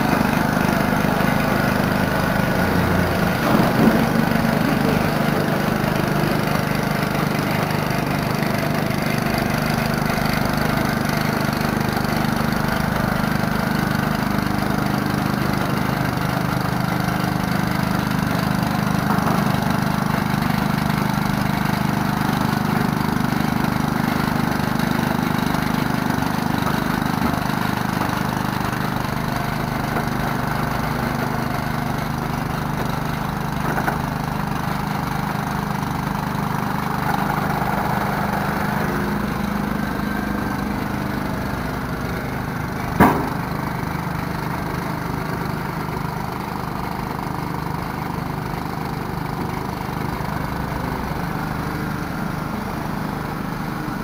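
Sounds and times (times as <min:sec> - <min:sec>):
forklift engine running: 0:00.0 - 0:54.0.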